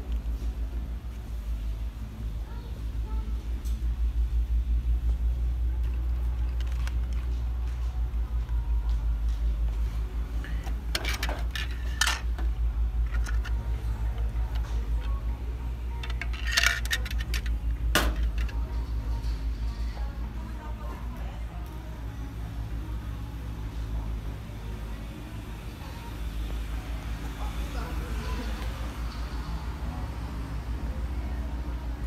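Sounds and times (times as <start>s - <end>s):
faint background music: 0.0s - 32.0s
phone handling rumble: 10.4s - 15.2s, 15.9s - 18.8s.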